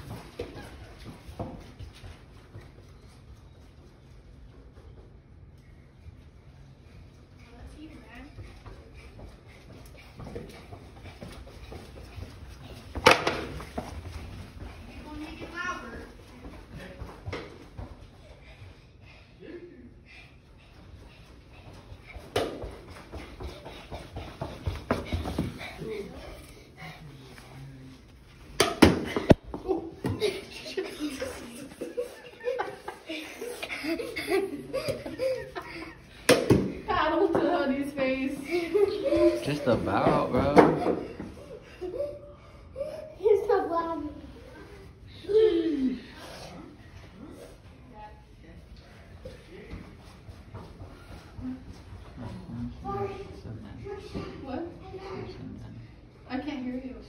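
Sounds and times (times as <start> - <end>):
laughter: 30.0 - 36.1
child's voice: 43.0 - 44.4, 52.8 - 55.3.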